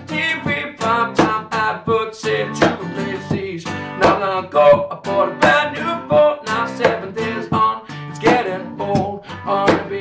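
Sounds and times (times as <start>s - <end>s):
acoustic guitar strummed: 0.0s - 10.0s
percussive hits on guitar strings: 0.4s - 2.0s, 2.6s - 10.0s.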